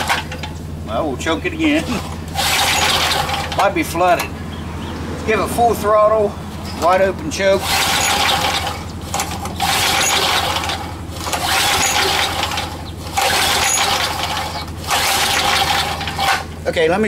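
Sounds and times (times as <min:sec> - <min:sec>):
recoil pull starter rattling: 0:00.0 - 0:04.4, 0:06.6 - 0:16.9.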